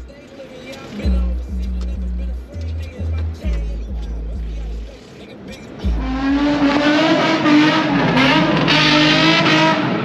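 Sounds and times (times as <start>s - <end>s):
deep bass music beat: 0.0s - 10.0s
car engine at high revs: 0.1s - 10.0s.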